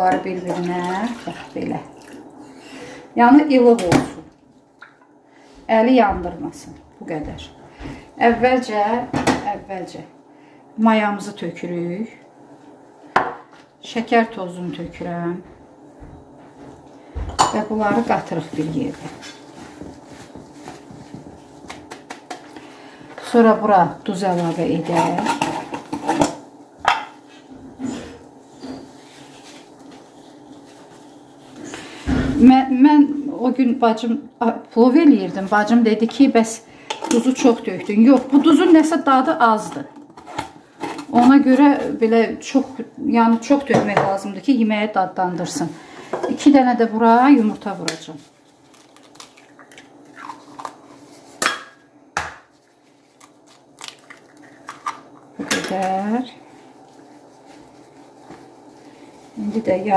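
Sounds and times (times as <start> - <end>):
woman's voice: 0.0 - 2.0, 3.1 - 4.3, 5.6 - 10.2, 10.8 - 12.3, 13.8 - 15.6, 17.4 - 19.2, 23.2 - 25.6, 32.1 - 40.0, 41.1 - 48.3, 55.4 - 56.5, 59.4 - 59.9
low steady hum: 0.0 - 59.9
soft handling sounds of bowl: 15.8 - 21.7, 24.1 - 32.0, 50.4 - 51.4, 52.5 - 53.7, 54.4 - 59.9
eggshells cracking: 48.7 - 50.8.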